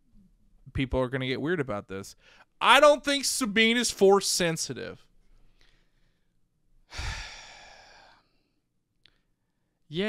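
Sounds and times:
man sighing: 6.9s - 8.2s.

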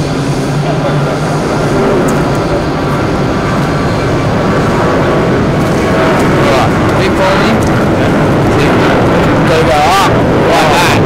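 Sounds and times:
jet engines rumbling: 0.0s - 11.0s.

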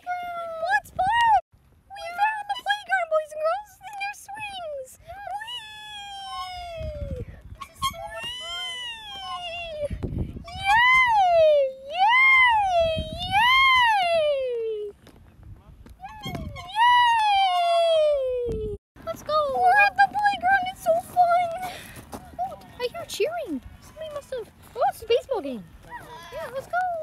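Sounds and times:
high-pitched voice wailing: 7.8s - 14.9s.

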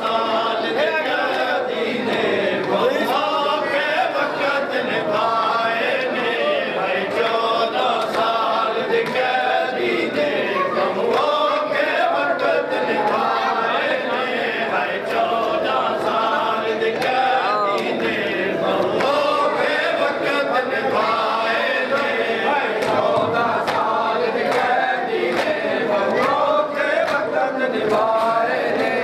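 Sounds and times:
men chanting in unison: 0.0s - 29.0s
hands slapping chests: 22.8s - 26.4s.

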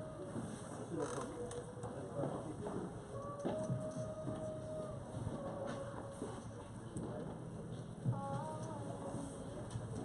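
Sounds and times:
spectators chatting: 0.0s - 10.0s.

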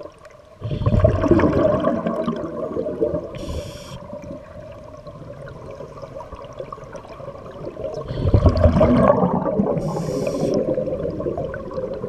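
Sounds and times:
underwater gurgling: 0.0s - 12.0s.

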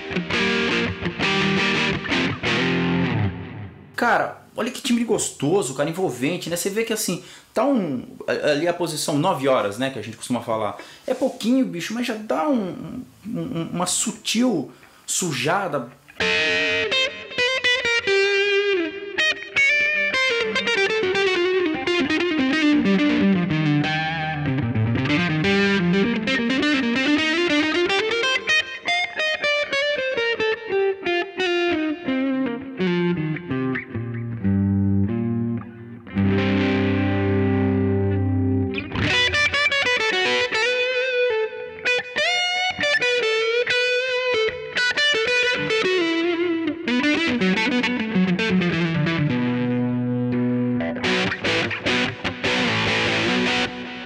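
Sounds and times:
electric guitar with light distortion: 0.0s - 5.0s, 14.7s - 54.0s.

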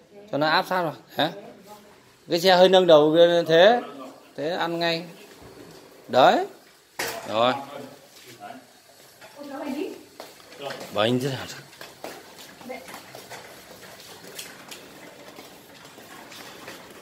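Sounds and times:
hand trolley rattling over tiles: 0.3s - 17.0s
voices: 1.1s - 11.8s.

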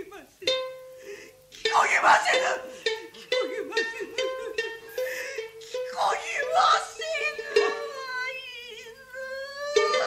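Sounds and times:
shamisen plucked notes: 0.4s - 5.9s
woman chanting narration: 6.0s - 10.0s.

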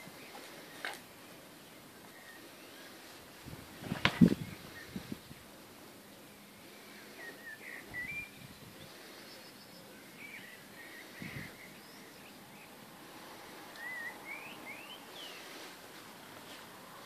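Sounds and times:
songbirds warbling: 0.0s - 17.0s.

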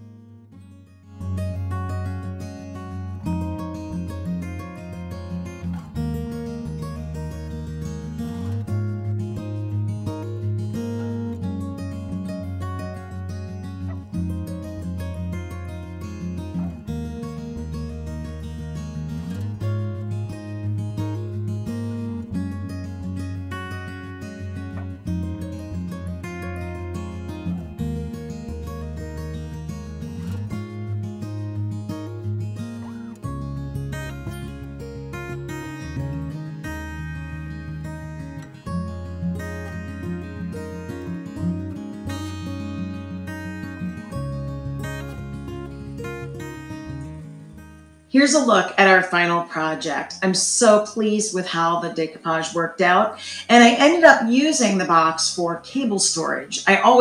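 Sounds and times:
acoustic guitar music: 0.0s - 57.0s.

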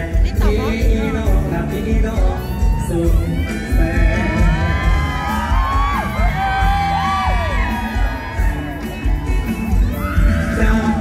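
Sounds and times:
loud band music through pa: 0.0s - 11.0s
crowd screaming and cheering: 0.2s - 11.0s.

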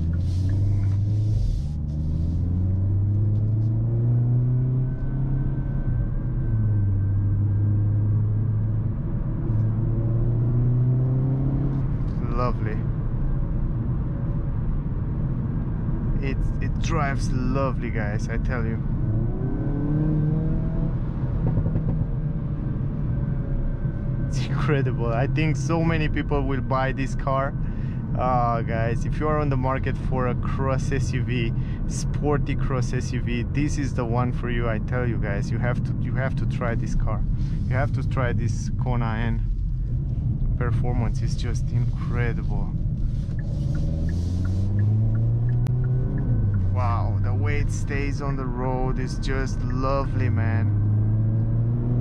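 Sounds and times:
car engine inside cabin: 0.0s - 52.0s
road noise: 0.0s - 52.0s.

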